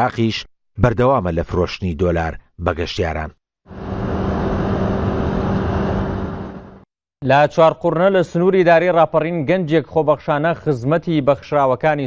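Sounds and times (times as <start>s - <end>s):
distant road traffic: 3.7s - 6.8s.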